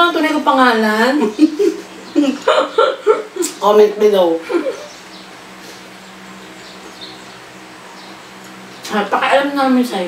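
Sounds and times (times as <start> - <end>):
women speaking: 0.0 - 2.5, 8.8 - 10.0
women laughing: 1.2 - 3.6, 4.4 - 5.0.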